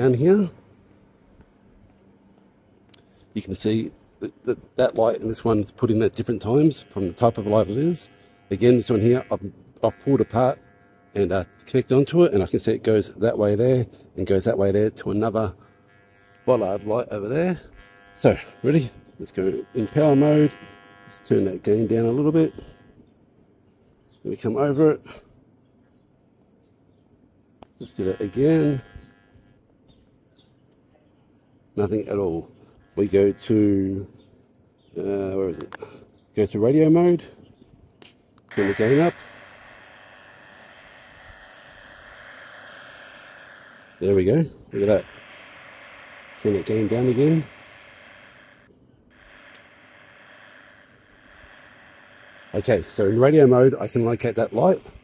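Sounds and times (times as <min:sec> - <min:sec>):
high bird chirps: 0:37.5 - 0:55.0.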